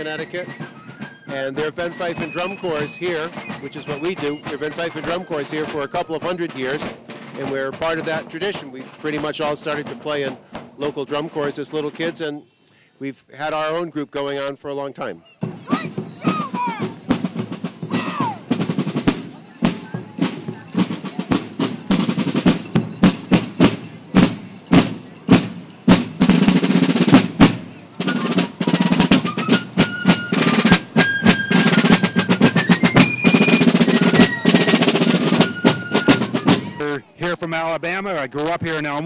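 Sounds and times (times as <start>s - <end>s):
snare and bass drums marching: 0.0s - 12.4s, 15.4s - 39.0s
fifes playing high melody: 15.8s - 37.1s.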